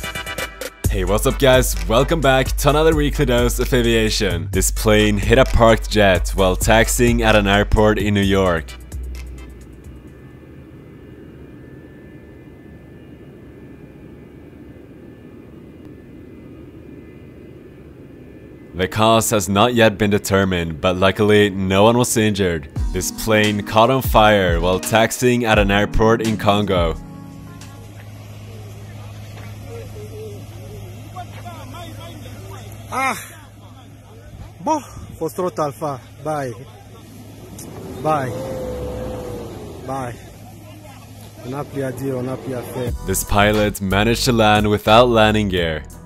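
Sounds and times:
distant aircraft engine rumble: 0:00.8 - 0:46.0
steady low hum: 0:00.8 - 0:46.0
onlookers talking: 0:25.5 - 0:45.1
loud shout: 0:37.6 - 0:40.2.

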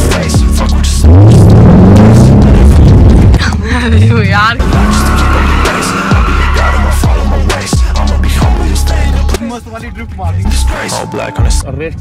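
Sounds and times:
car engine accelerating hard: 0:00.0 - 0:09.3
high tyre squeal: 0:04.6 - 0:07.1.

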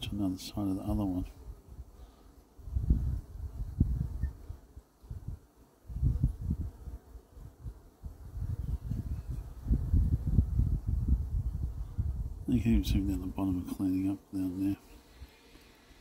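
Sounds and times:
honeybees buzzing: 0:00.0 - 0:16.0.

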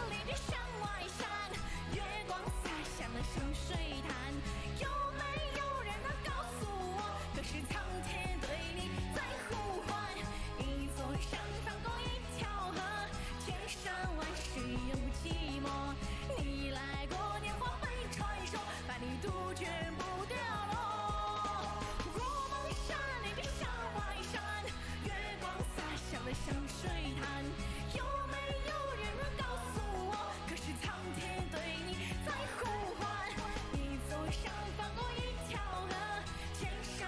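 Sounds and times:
dance backing track with bass beat: 0:00.0 - 0:37.0
woman singing pop song: 0:00.0 - 0:37.0.

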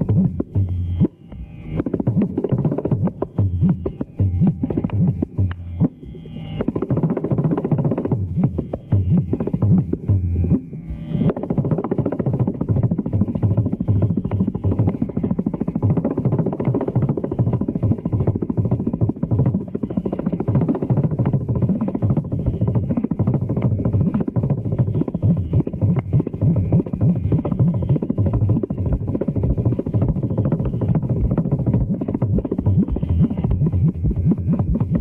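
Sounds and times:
hand drum percussion solo: 0:11.4 - 0:35.0.

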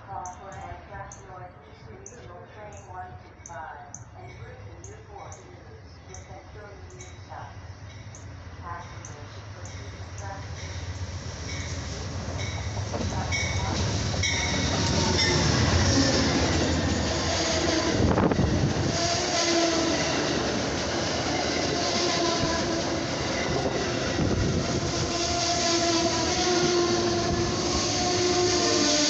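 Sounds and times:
diesel locomotive passing: 0:00.0 - 0:29.0
train wheels clattering on rails: 0:07.9 - 0:17.1.

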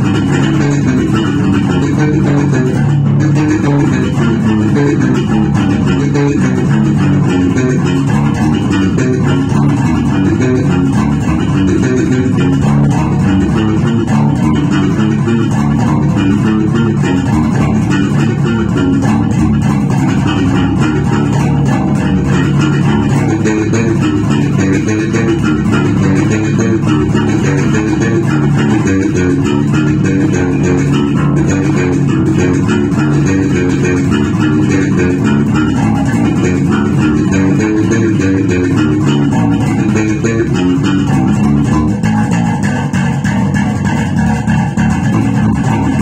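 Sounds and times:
electric bass guitar groove: 0:00.0 - 0:46.0.

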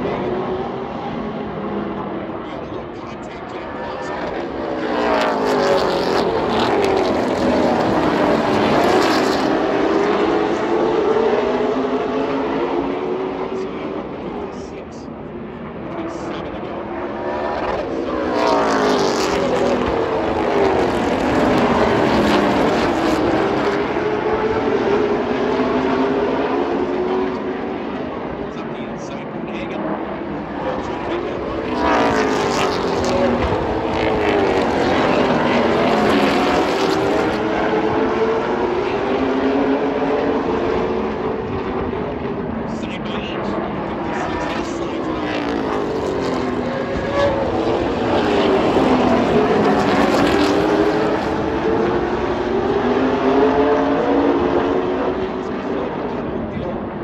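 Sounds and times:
stock car engines racing past: 0:00.0 - 0:57.0.

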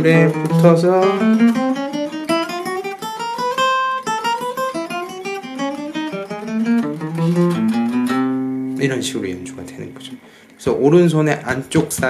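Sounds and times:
acoustic guitar picked notes: 0:00.0 - 0:10.5.

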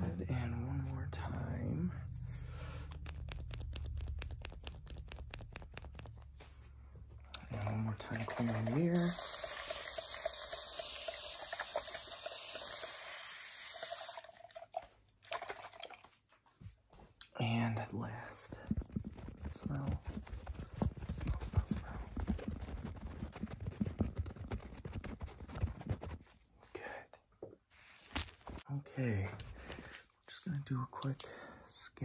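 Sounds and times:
low hum: 0:00.0 - 0:08.2
spray bottle hissing mist: 0:09.0 - 0:14.0.

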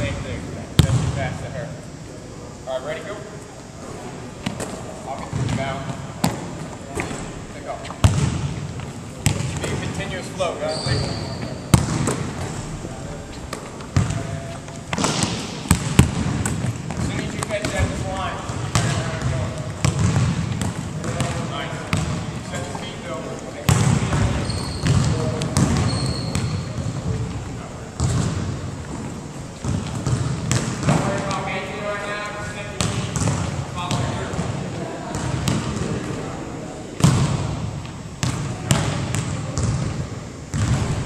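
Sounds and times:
basketballs bouncing on wooden floor: 0:00.8 - 0:01.2, 0:04.4 - 0:07.2, 0:07.8 - 0:10.1, 0:10.8 - 0:12.6, 0:13.5 - 0:23.0, 0:23.6 - 0:31.6, 0:32.8 - 0:36.1, 0:37.0 - 0:41.0
voices chattering: 0:33.6 - 0:37.0.

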